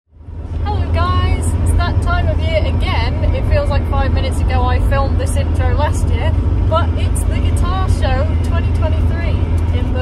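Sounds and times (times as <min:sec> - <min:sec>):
road and engine rumble in van: 0:00.1 - 0:10.0
woman talking: 0:00.6 - 0:10.0.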